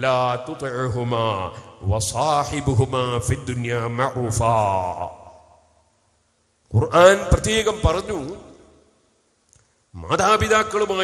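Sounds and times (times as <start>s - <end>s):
man speaking: 0.0s - 5.3s, 6.7s - 8.6s, 10.0s - 11.0s.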